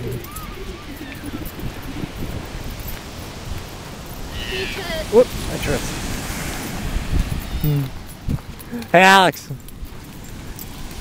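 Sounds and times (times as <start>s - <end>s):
faint voices: 0.0s - 2.7s, 4.3s - 5.6s
wind rumbling on microphone: 0.0s - 8.8s.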